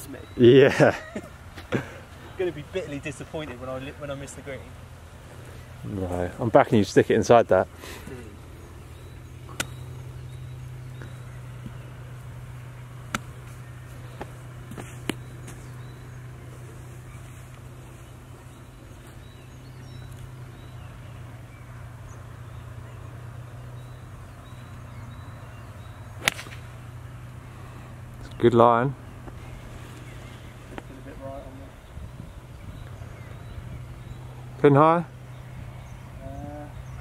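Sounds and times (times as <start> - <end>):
steady low hum: 0.0 - 37.0
golf club striking ball: 9.0 - 11.8, 13.0 - 13.5, 26.2 - 27.0.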